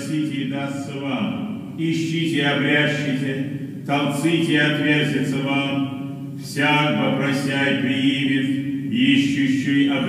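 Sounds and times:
man chanting liturgical text: 0:00.0 - 0:10.0.

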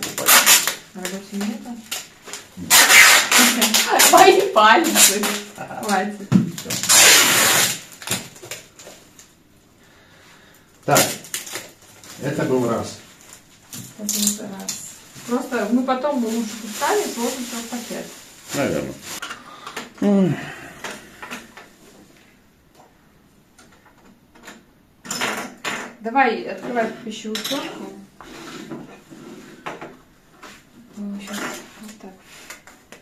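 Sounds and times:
packing tape pulled off roll: 0:00.0 - 0:06.0, 0:06.6 - 0:09.3, 0:10.9 - 0:12.2
plastic wrapping rustling: 0:00.0 - 0:09.3, 0:10.8 - 0:19.2.

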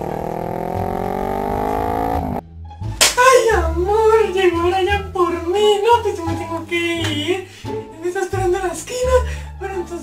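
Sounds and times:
motorcycle engine revving: 0:00.0 - 0:02.4.

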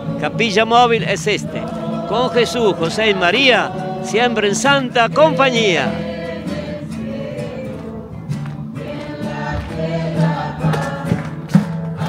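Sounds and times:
group singing a religious song: 0:00.0 - 0:12.0.

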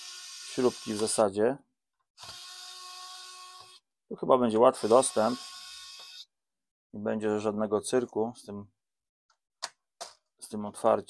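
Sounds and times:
electric screwdriver running: 0:00.0 - 0:01.2, 0:02.2 - 0:03.8, 0:04.8 - 0:06.2.

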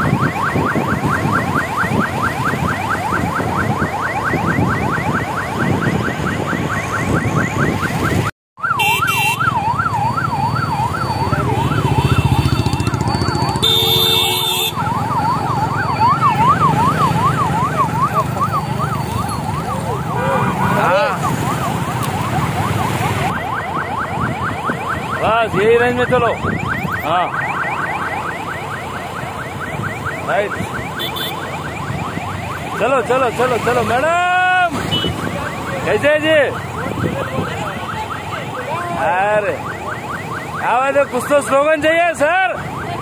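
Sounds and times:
police siren yelping: 0:00.0 - 0:43.0
road noise: 0:00.0 - 0:43.0.

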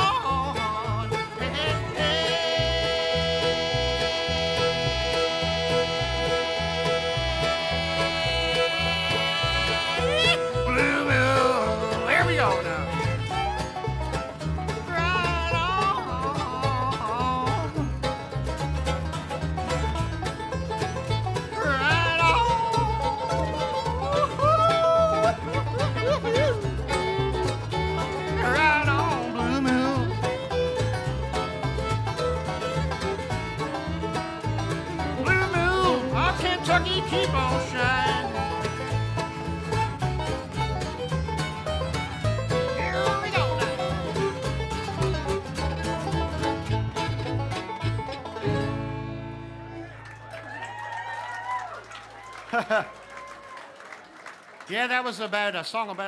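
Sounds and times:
upright bass pulse: 0:00.0 - 0:49.8
fiddle melody: 0:00.0 - 0:50.1
acoustic guitar: 0:00.0 - 0:51.2
banjo rolls: 0:00.0 - 0:51.8.

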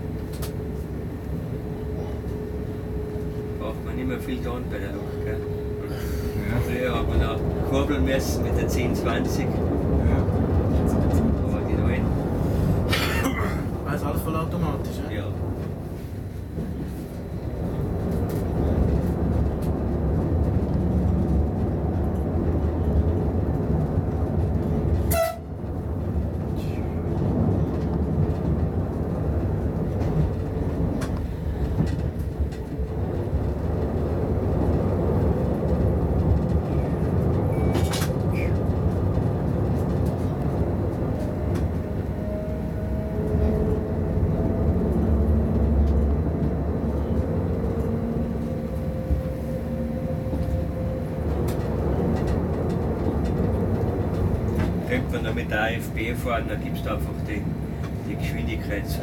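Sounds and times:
locomotive running rumble: 0:00.0 - 0:59.0.

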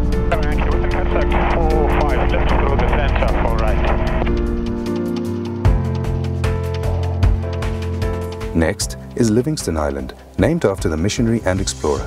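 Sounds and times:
helicopter rotor beat: 0:00.0 - 0:09.1
music: 0:00.0 - 0:12.0.

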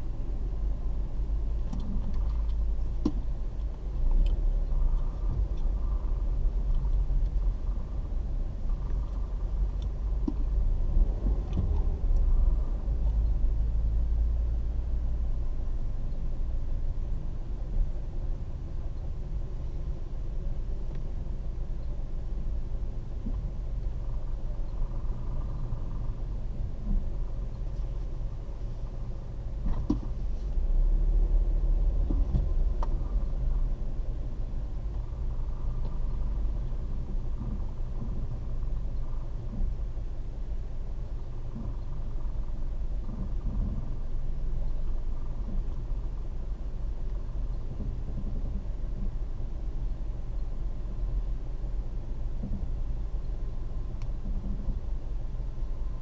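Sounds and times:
car engine rumble: 0:00.0 - 0:56.0
road noise: 0:00.0 - 0:56.0.

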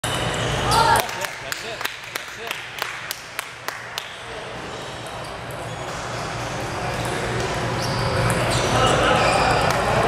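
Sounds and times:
table tennis play: 0:05.8 - 0:10.0.

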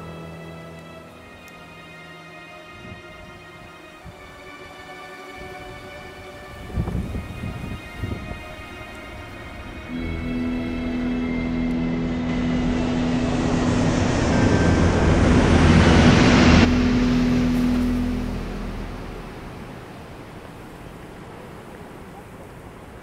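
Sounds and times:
jet aircraft flying overhead: 0:00.0 - 0:21.5.

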